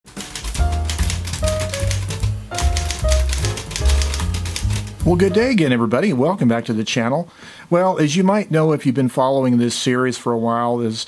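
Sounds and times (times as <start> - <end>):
typewriter keystrokes clacking: 0.1 - 5.5
intro music with bass line: 0.5 - 5.8.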